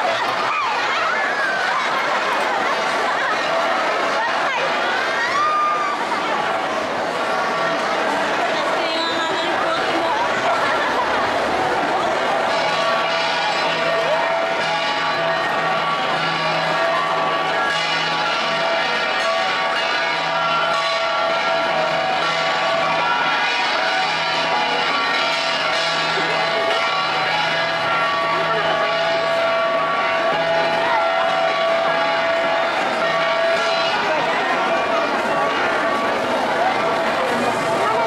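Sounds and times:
crowd chatter: 0.0s - 38.0s
bronze gongs ringing: 7.2s - 38.0s.

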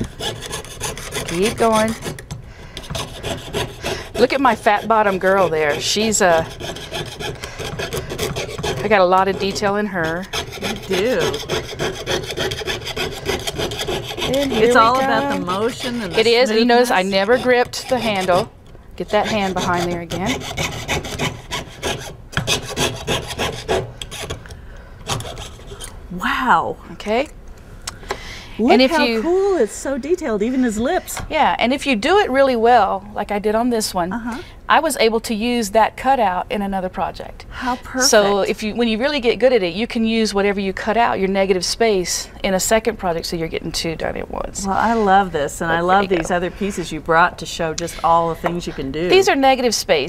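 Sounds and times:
saw cutting copper sheet: 0.0s - 2.2s, 2.8s - 24.4s.

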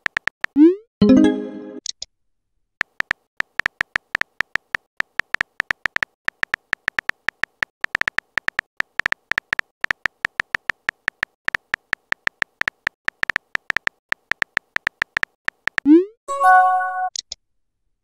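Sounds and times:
phone keyboard typing clicks: 2.8s - 15.9s.

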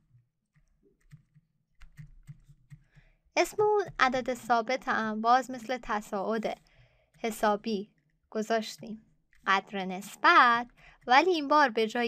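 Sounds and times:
stylus tapping on drawing tablet: 1.0s - 7.7s.

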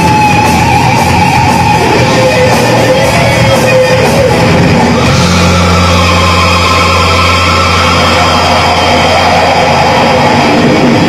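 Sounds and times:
death metal band playing: 0.0s - 11.0s
low guitar drone: 0.0s - 11.0s.

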